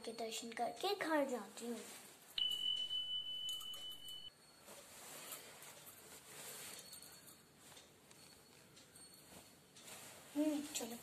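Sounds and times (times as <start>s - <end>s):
high chime-like tone: 2.4s - 5.4s.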